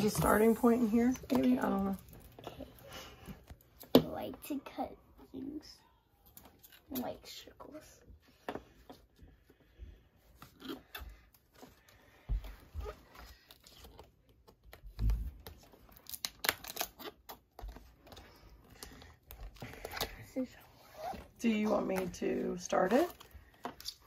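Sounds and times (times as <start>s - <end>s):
plastic crinkling and tearing: 13.0s - 18.2s.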